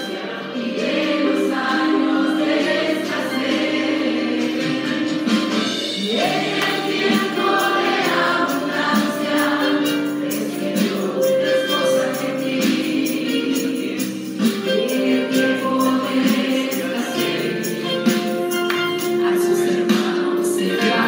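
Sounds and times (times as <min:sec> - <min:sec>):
gospel choir singing: 0:00.0 - 0:21.0
steady percussion beat: 0:03.4 - 0:21.0.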